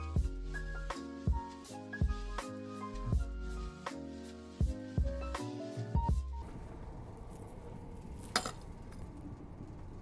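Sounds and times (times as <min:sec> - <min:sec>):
background music: 0:00.0 - 0:06.4.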